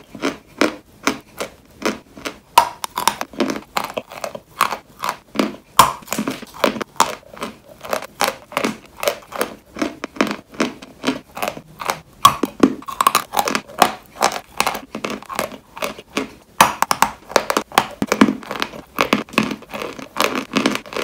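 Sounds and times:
crisp dessert crunching: 0:00.0 - 0:21.0.

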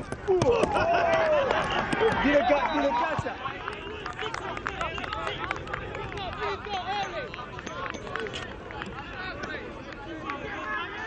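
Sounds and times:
voices calling out: 0:00.2 - 0:11.0.

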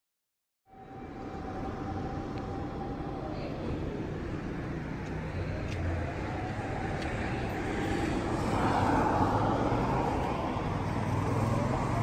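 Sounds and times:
distant fire engine siren: 0:00.7 - 0:12.0.

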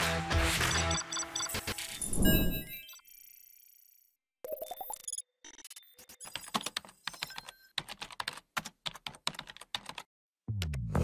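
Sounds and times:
music: 0:00.0 - 0:01.9, 0:10.5 - 0:11.0
computer keyboard typing: 0:06.2 - 0:10.1.

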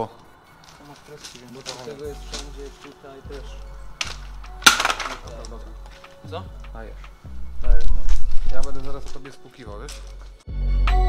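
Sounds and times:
hard object clattering: 0:04.0 - 0:06.8.

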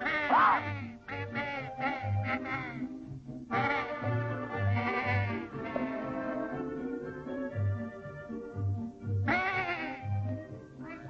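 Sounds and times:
cartoon animal bleating cry: 0:00.0 - 0:02.9, 0:03.5 - 0:06.0, 0:09.2 - 0:11.0
cartoon orchestral music: 0:00.0 - 0:02.9, 0:03.5 - 0:11.0.

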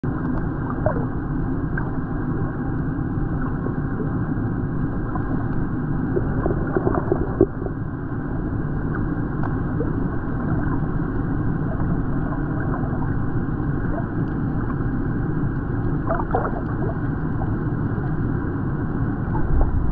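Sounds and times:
underwater camera rumble: 0:00.0 - 0:19.9
crackles: 0:00.1 - 0:19.9.

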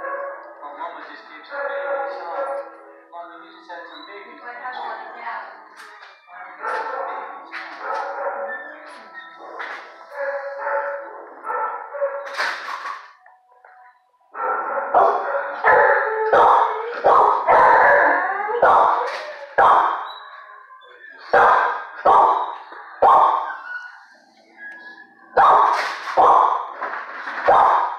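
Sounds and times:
dog barking: 0:00.0 - 0:00.6, 0:01.7 - 0:02.7, 0:06.6 - 0:08.7, 0:10.2 - 0:12.4, 0:14.4 - 0:20.1, 0:21.3 - 0:23.6, 0:25.3 - 0:26.8, 0:27.4 - 0:27.9
voices: 0:00.0 - 0:11.7
background music: 0:00.0 - 0:27.9.

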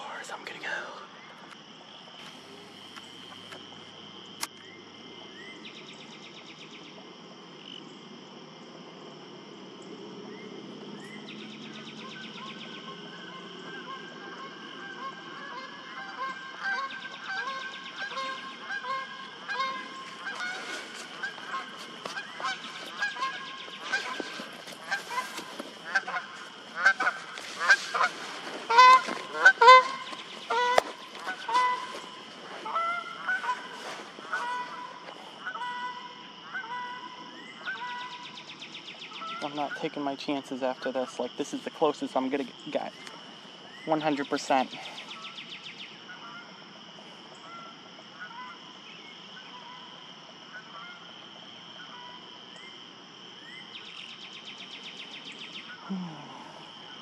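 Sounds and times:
geese honking: 0:12.0 - 0:38.3, 0:46.1 - 0:46.5, 0:47.4 - 0:48.6, 0:50.5 - 0:51.1.

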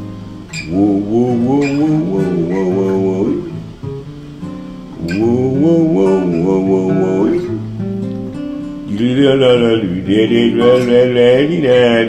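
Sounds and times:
acoustic guitar strummed: 0:00.0 - 0:12.0
man singing wordlessly: 0:00.5 - 0:03.8, 0:05.0 - 0:07.7, 0:08.8 - 0:12.0.

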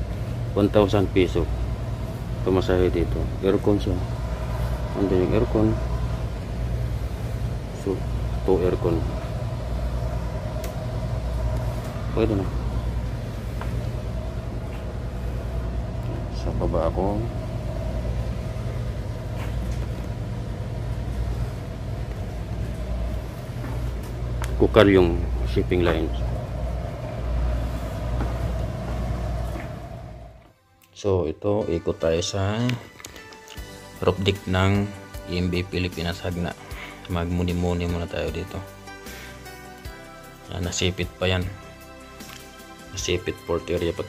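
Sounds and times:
engine rumble: 0:00.0 - 0:30.5
low machinery hum: 0:00.0 - 0:30.6
faint steady whine: 0:00.0 - 0:30.7.

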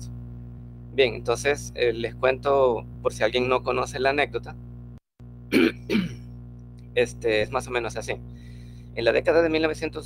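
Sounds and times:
man coughing: 0:05.5 - 0:06.3.

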